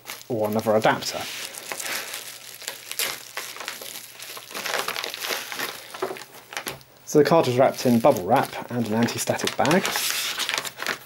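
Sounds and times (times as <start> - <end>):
bubble wrap crinkling: 0.0 - 11.0.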